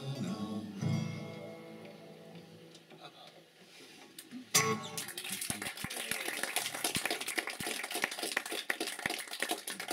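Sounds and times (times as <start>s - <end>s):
small audience applauding: 4.8s - 9.9s.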